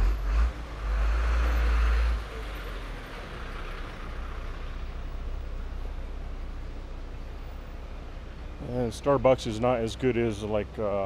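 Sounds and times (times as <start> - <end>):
bus engine rumble with hiss: 0.0 - 11.0
street traffic: 0.0 - 11.0.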